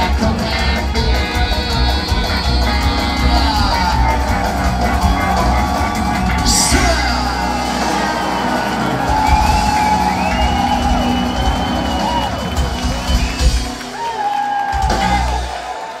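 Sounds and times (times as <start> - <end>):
upright bass: 0.0 - 13.8, 14.8 - 15.5
live country band playing: 0.0 - 16.0
crowd whooping and cheering: 1.2 - 16.0.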